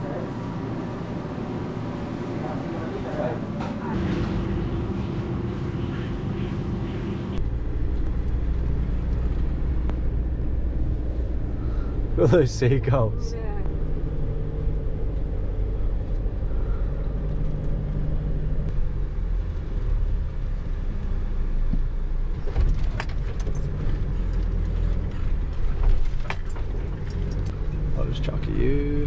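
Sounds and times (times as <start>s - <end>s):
van engine low drone: 0.0s - 29.0s.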